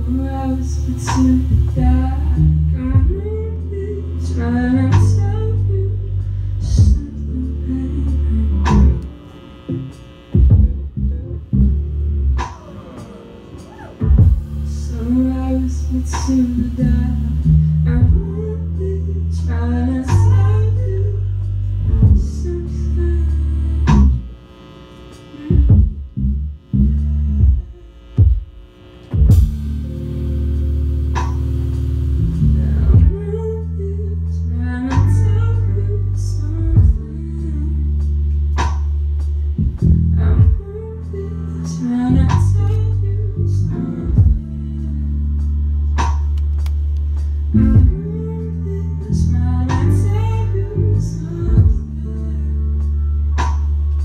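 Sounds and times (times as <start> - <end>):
electric bass: 0.0 - 54.0
electric guitar: 0.0 - 54.0.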